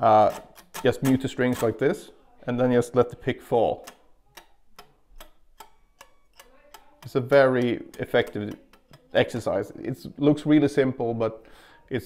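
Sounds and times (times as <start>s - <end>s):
muted guitar string clicks: 3.8s - 9.3s.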